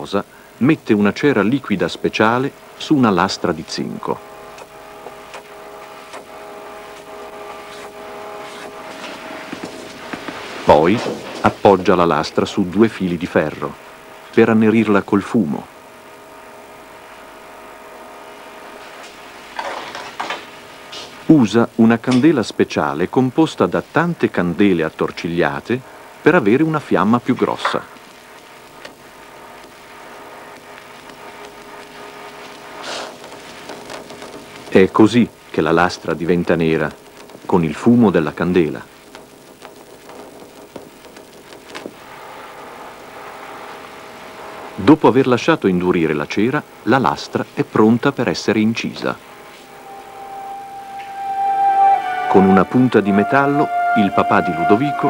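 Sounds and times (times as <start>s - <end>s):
low steady hum: 0.0s - 55.0s
steady hiss: 0.0s - 55.0s
low hum: 49.2s - 55.0s.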